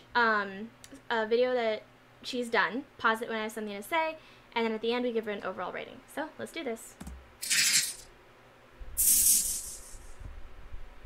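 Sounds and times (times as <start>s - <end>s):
high hiss bursts: 7.4s - 8.0s, 9.0s - 10.2s.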